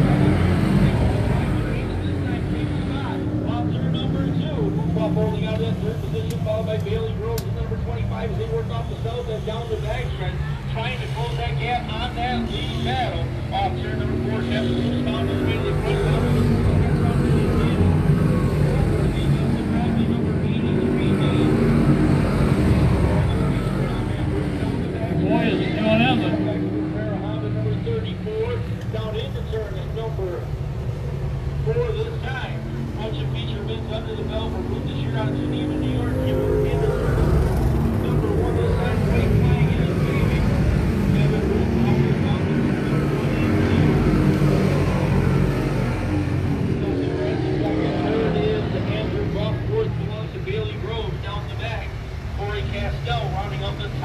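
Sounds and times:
race car engines droning: 0.0s - 54.0s.

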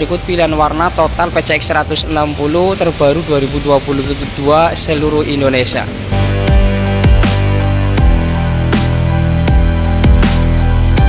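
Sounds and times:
deep sustained bass: 0.0s - 11.0s.

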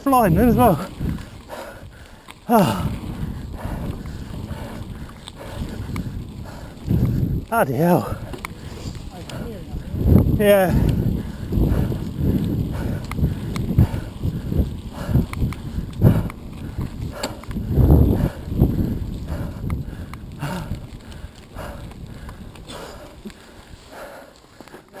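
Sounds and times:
wind rumble on microphone: 0.0s - 24.4s
bike tyres on trail: 0.0s - 25.0s.

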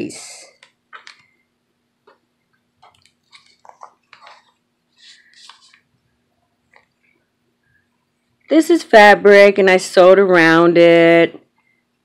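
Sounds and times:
pages rustling and scraping: 2.8s - 6.0s.

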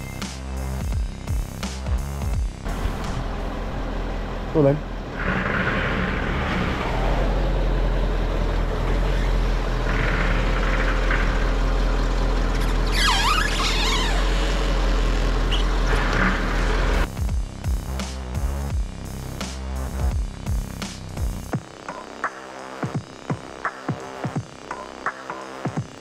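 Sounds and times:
diesel engine idling: 2.7s - 17.1s
high squeal: 12.5s - 16.6s.

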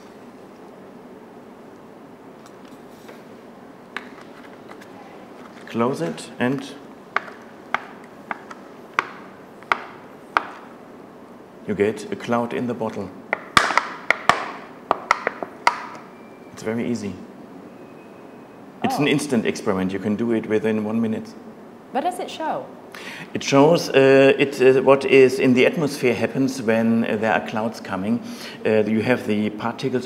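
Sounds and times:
plastic bottle handling noises: 3.9s - 9.2s.

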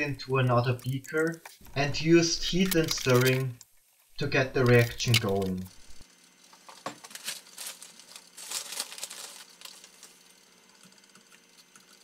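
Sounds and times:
plastic bag crinkling: 0.8s - 3.6s, 4.2s - 12.0s.

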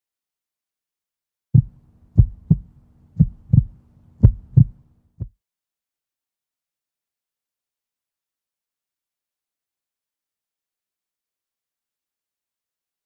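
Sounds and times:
faint low hum: 1.6s - 5.3s
heartbeat thumps: 1.6s - 5.4s.

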